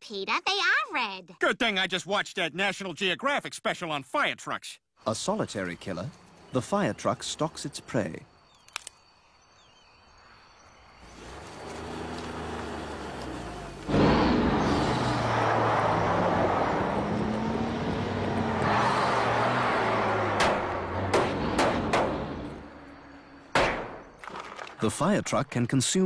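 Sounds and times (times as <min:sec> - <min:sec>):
fire truck engine revving: 0:11.0 - 0:23.2
sharp knocks: 0:20.3 - 0:22.5, 0:23.5 - 0:24.4.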